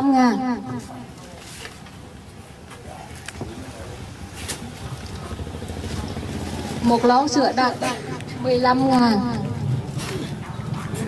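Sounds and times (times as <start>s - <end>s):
low engine rumble: 0.8s - 11.0s.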